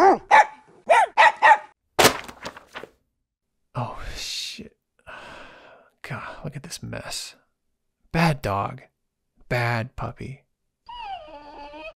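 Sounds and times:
dog barking: 0:00.0 - 0:01.8.

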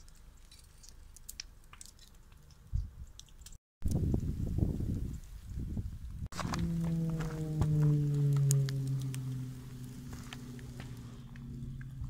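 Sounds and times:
fire crackling: 0:00.0 - 0:12.0
wind rumble on microphone: 0:02.7 - 0:03.2, 0:03.8 - 0:12.0.

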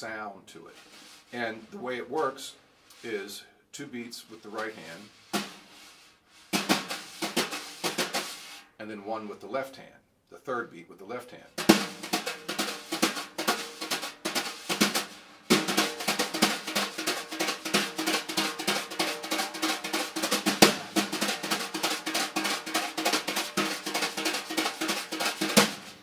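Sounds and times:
wire brushes on snare drum: 0:04.5 - 0:08.7, 0:11.6 - 0:26.0.

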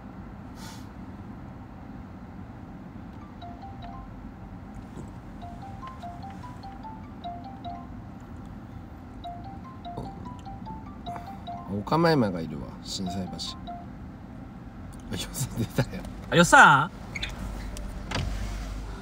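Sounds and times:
phone ringback tune of high beeps: 0:03.2 - 0:04.2, 0:05.4 - 0:08.0, 0:09.2 - 0:12.0, 0:13.1 - 0:13.9.

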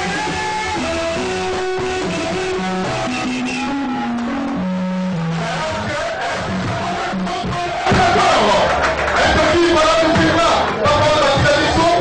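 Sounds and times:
live band with electric guitars: 0:00.0 - 0:12.0.

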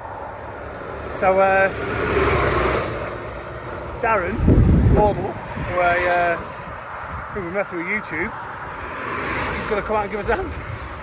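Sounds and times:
vehicle passing on motorway: 0:00.0 - 0:11.0.

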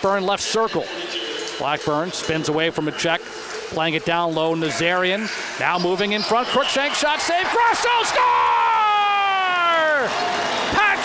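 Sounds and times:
announcer shouting: 0:05.8 - 0:10.1, 0:10.7 - 0:11.0.

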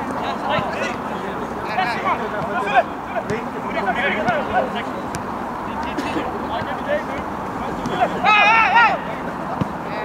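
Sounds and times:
players calling: 0:00.0 - 0:10.0.

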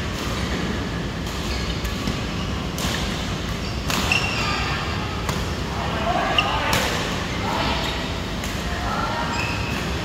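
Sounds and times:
steady background noise: 0:00.0 - 0:10.0
racket hitting shuttlecock: 0:02.8 - 0:04.3
shoe squeak on court: 0:03.6 - 0:04.6, 0:09.3 - 0:09.7.

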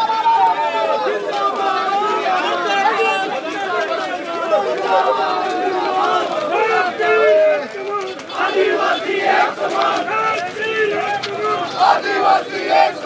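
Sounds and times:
crowd of men talking and shouting: 0:00.0 - 0:13.0.

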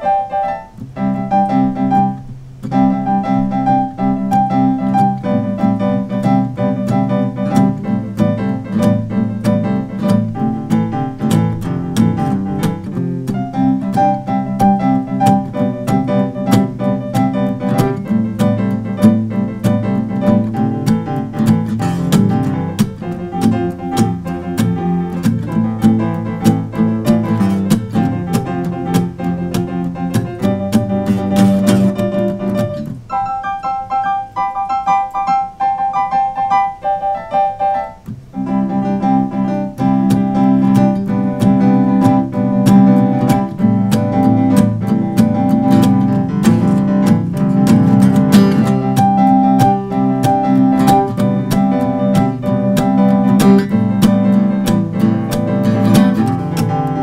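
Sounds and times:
digital piano piece: 0:00.0 - 0:57.0
guitar accompaniment: 0:00.0 - 0:57.0.

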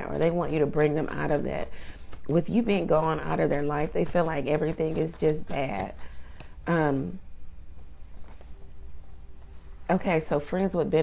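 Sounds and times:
low steady hum: 0:00.0 - 0:11.0
pen scratching on paper: 0:02.4 - 0:06.0.

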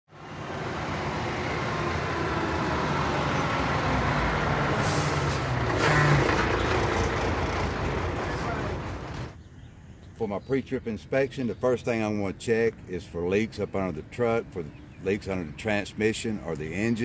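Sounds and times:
heavy truck engine running: 0:00.1 - 0:09.4
air brake hiss: 0:04.8 - 0:05.5.

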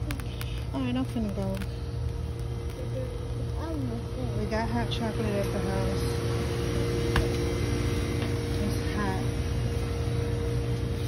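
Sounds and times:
steady hum: 0:00.0 - 0:11.0
childlike voice talking: 0:02.6 - 0:04.6.

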